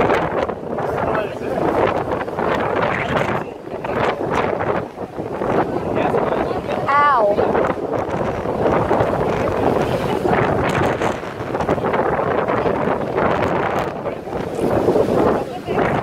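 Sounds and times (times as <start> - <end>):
sea surf crashing on rocks: 0.0 - 16.0
wind buffeting microphone: 0.0 - 16.0.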